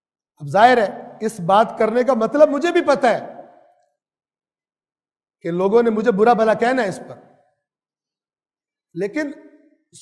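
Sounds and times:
man speaking: 8.9s - 10.0s.

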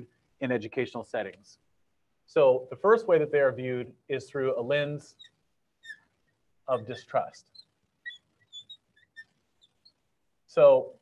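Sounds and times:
marker squeaking on glass: 4.7s - 10.2s.

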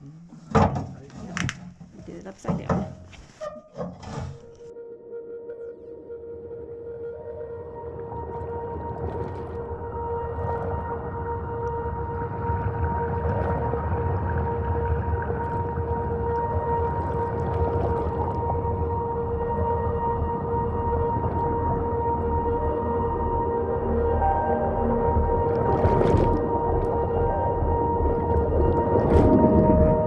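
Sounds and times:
low rumble: 7.9s - 30.0s.

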